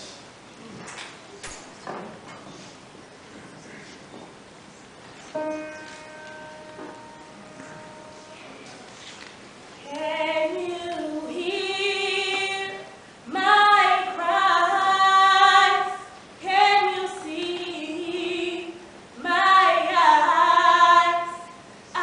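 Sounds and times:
woman singing unaccompanied: 0:09.8 - 0:22.0.

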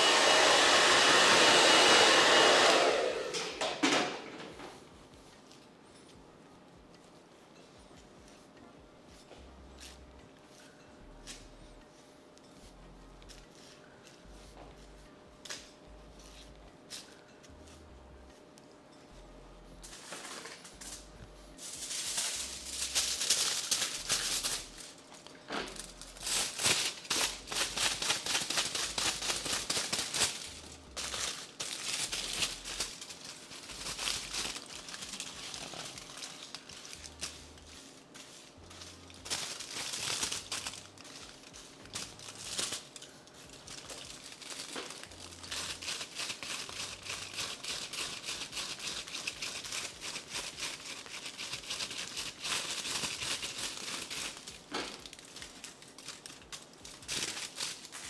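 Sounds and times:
aluminium foil crinkling: 0:19.8 - 0:58.0.

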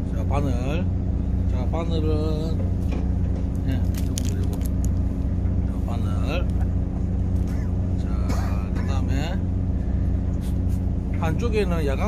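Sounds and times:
boat engine running: 0:00.0 - 0:12.0.

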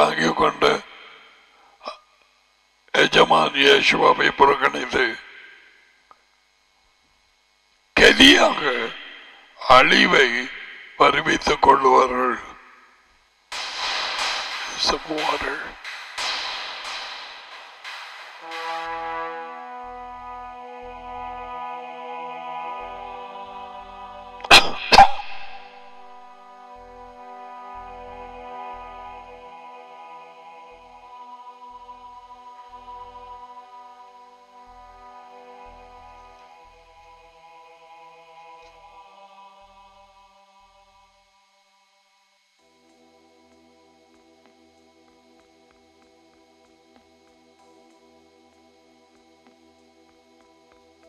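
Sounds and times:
person sneezing loudly: 0:24.4 - 0:25.4
soft keyboard pad music: 0:26.2 - 0:37.7.

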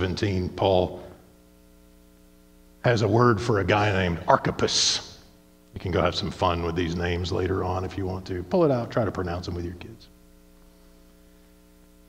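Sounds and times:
man speaking: 0:00.0 - 0:01.3, 0:02.8 - 0:10.1
faint electrical hum: 0:00.0 - 0:12.0.

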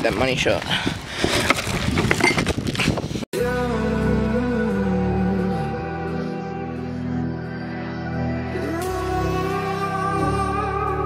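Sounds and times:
music with long held chords: 0:03.4 - 0:11.0.

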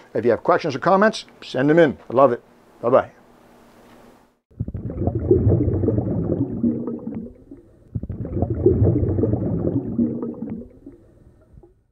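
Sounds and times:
bubbling gurgling water: 0:04.5 - 0:11.9.

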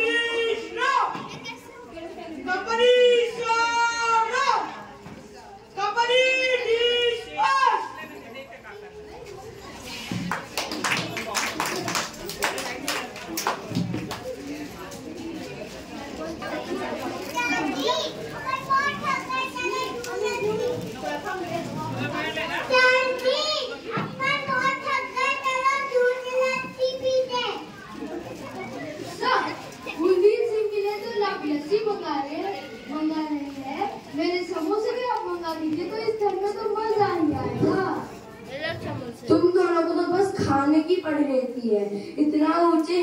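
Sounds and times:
children talking and calling out: 0:00.0 - 0:43.0.

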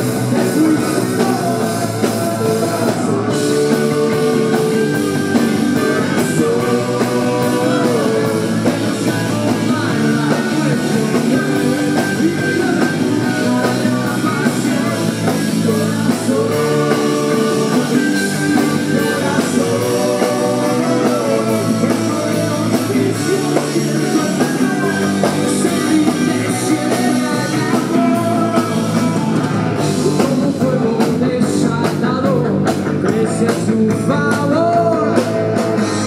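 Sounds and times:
live rock band: 0:00.0 - 0:36.0
man singing: 0:00.0 - 0:36.0.

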